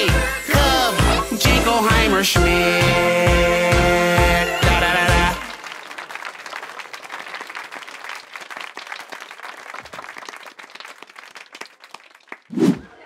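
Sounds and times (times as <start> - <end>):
small group applauding: 5.0 - 13.0.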